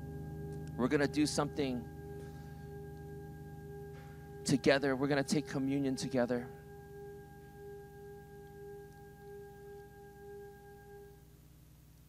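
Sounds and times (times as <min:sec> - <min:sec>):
keyboard pad note: 0:00.0 - 0:11.2
low hum: 0:00.0 - 0:12.0.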